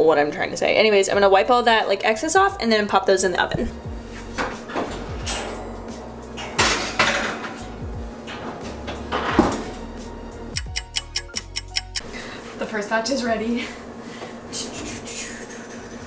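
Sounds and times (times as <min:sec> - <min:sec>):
music playing: 0:03.3 - 0:12.0
quick run of sharp beats: 0:10.6 - 0:12.0.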